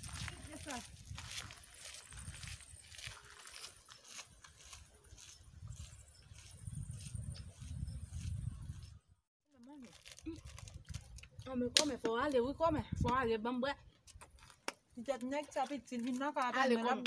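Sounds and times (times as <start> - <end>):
footsteps on gravel: 0.0 - 7.6.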